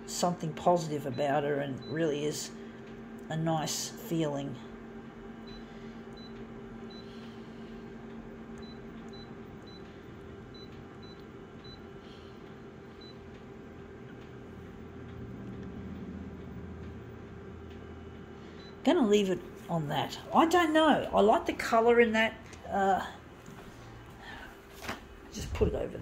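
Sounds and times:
low machine rumble: 0.0s - 26.0s
photocopier humming: 0.0s - 26.0s.

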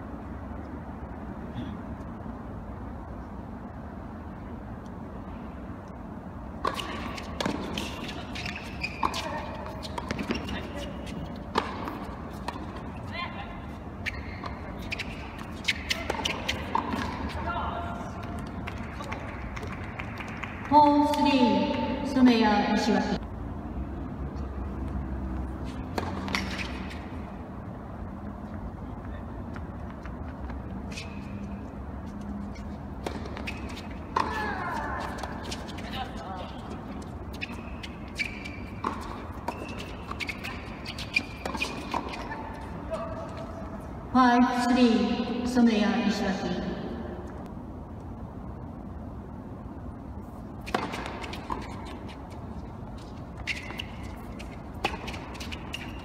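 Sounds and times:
racquets hitting tennis ball: 6.5s - 13.2s, 13.8s - 21.3s, 24.8s - 27.2s, 32.4s - 43.4s, 50.6s - 56.0s
tennis racket hitting ball: 6.6s - 12.8s, 14.8s - 17.5s, 53.4s - 56.0s
shoe squeaks: 6.7s - 17.6s, 25.6s - 27.2s, 30.0s - 43.5s, 50.6s - 56.0s.

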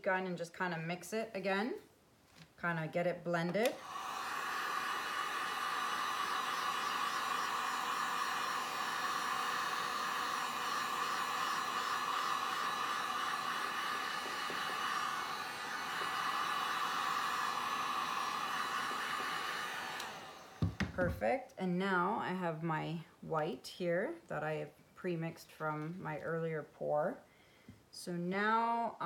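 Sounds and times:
heat gun blowing air: 3.5s - 21.2s.

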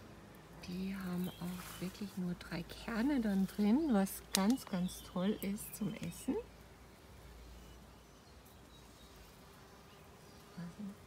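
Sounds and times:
bees buzzing: 0.2s - 11.0s.

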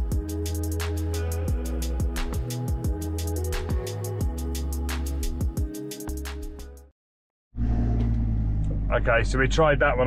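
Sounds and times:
van engine and road rumble: 7.6s - 10.0s.

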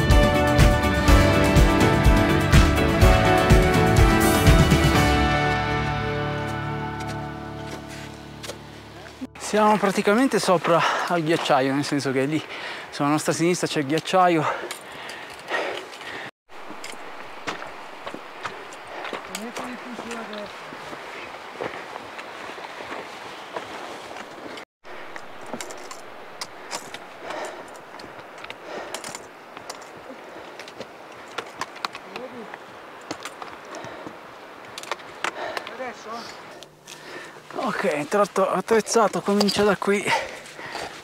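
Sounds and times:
footsteps on loose rock: 9.6s - 12.0s, 13.9s - 41.0s
stones clicking underfoot: 13.9s - 20.9s, 23.6s - 35.8s, 36.6s - 41.0s.

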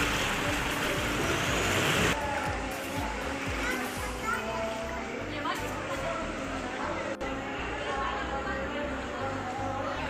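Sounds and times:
rain and running floodwater: 0.0s - 2.2s
quiet background music: 0.0s - 10.0s.

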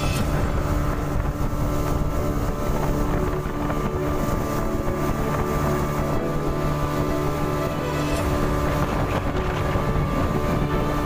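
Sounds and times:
motorboat engine running: 0.0s - 11.0s
wind buffeting microphone: 0.0s - 11.0s.

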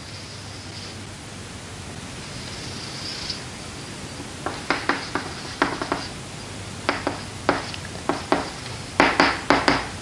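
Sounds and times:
steady hiss: 0.0s - 10.0s
chalk scratching on blackboard: 4.5s - 6.2s, 6.9s - 8.6s.

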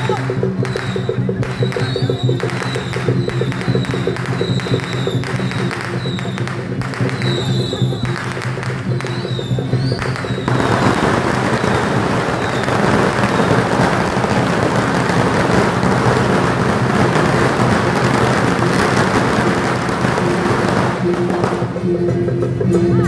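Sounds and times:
firecrackers crackling: 0.0s - 22.6s.

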